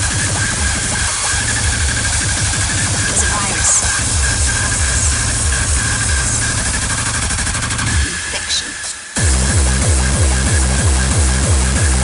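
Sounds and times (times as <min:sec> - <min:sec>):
distorted kick drum beat: 0:00.0 - 0:12.0
hardcore electronic dance music: 0:00.0 - 0:12.0
steady high tone: 0:02.8 - 0:09.7.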